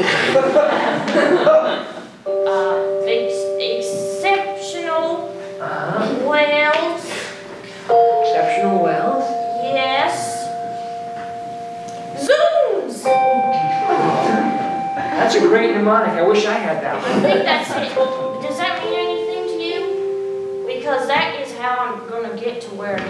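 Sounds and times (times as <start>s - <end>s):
person speaking: 1.5s - 20.0s
held keyboard chords: 2.3s - 23.0s.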